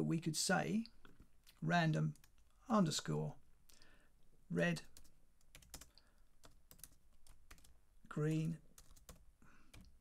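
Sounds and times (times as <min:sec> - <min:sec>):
faint keyboard typing: 0:01.0 - 0:02.6, 0:04.8 - 0:10.0.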